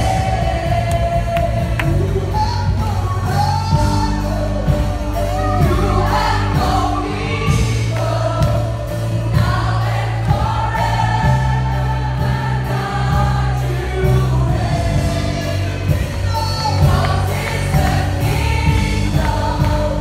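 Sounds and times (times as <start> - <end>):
band with bass and beat: 0.0 - 20.0
group singing worship song: 0.0 - 20.0.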